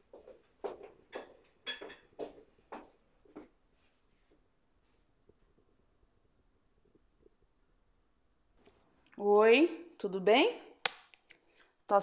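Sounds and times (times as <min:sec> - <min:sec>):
footsteps on hard floor: 0:00.0 - 0:04.0
dishes clinking: 0:01.1 - 0:02.1.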